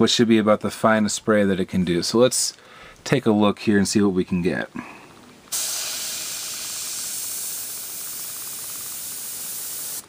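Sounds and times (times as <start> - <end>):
airbrush hissing: 5.5 - 10.0.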